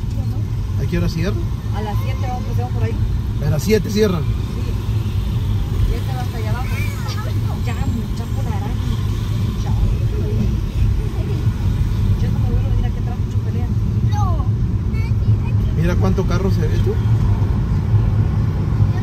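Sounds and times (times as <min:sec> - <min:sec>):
engine and road noise rumble: 0:00.0 - 0:19.0.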